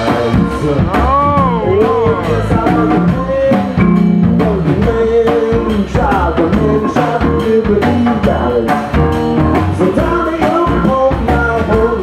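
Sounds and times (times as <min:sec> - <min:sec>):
drum kit: 0:00.0 - 0:12.0
electric guitar: 0:00.0 - 0:12.0
man singing: 0:00.0 - 0:12.0.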